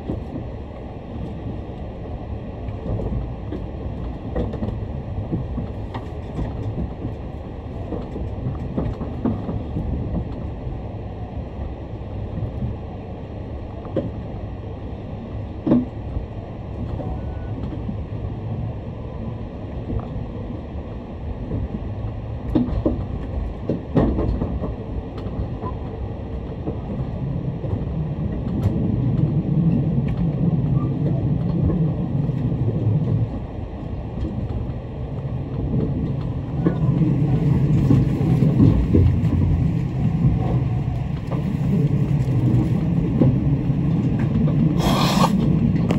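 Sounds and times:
train wheels rumbling on rails: 0:00.0 - 0:45.9.

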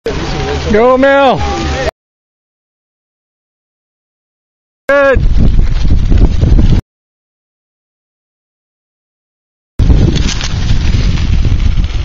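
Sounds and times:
wind buffeting microphone: 0:05.0 - 0:06.8, 0:09.8 - 0:12.0.

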